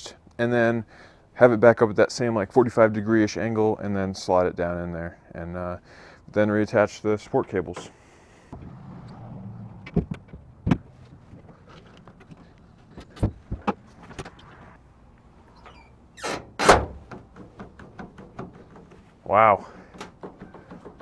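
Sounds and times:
tailgate clunking shut: 16.2s - 18.7s.

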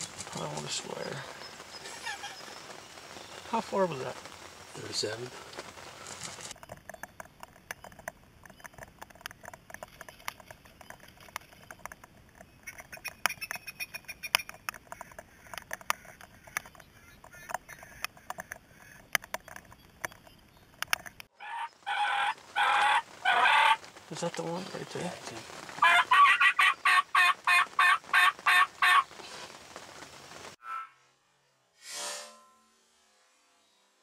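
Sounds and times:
wild turkey calling: 0.1s - 3.8s, 12.6s - 20.4s, 21.4s - 23.9s, 25.8s - 29.1s, 30.6s - 31.0s.

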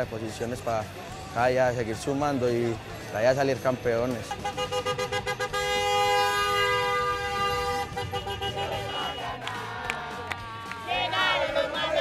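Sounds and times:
car horn long blast: 4.2s - 9.4s.

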